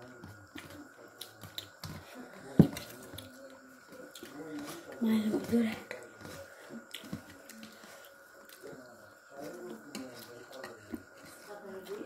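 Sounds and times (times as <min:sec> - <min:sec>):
small clicks and taps of eating: 0:00.1 - 0:08.8, 0:09.4 - 0:12.0.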